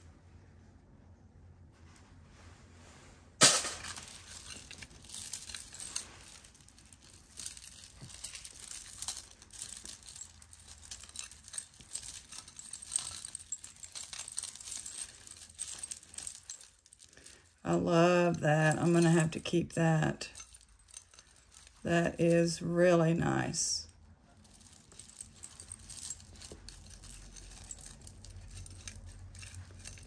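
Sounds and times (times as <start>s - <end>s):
jewelry clattering: 3.4s - 30.0s
metal chains and beads clinking: 3.4s - 30.0s.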